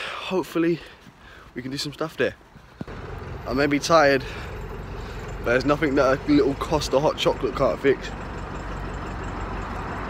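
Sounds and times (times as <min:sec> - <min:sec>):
road vehicle rumble: 0:00.8 - 0:10.0.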